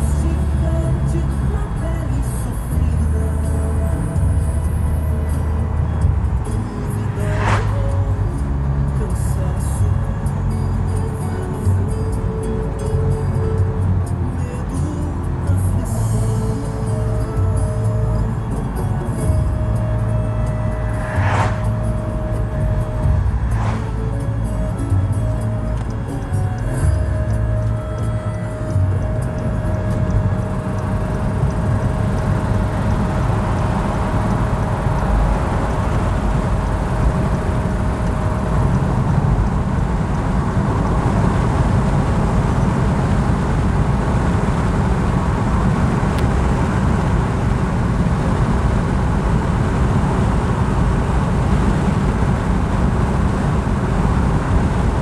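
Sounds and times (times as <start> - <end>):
music playing: 0.0 - 43.6
road and engine rumble: 0.0 - 55.0.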